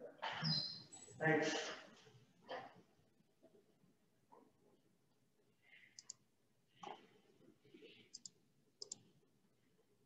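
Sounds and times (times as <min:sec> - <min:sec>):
faint small clicks: 0:05.9 - 0:06.2, 0:08.1 - 0:09.1.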